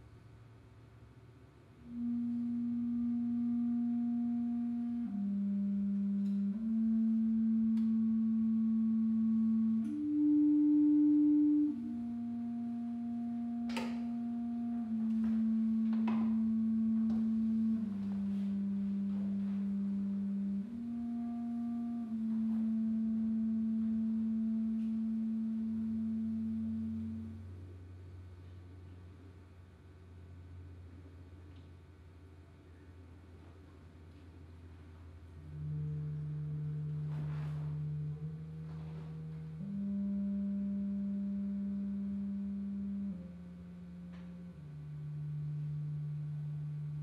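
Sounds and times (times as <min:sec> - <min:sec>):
clarinet playing low notes: 0:01.6 - 0:47.0.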